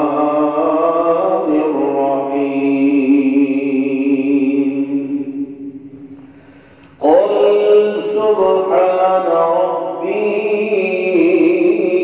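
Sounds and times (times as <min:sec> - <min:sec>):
man chanting over microphone: 0:00.0 - 0:05.8, 0:07.0 - 0:12.0.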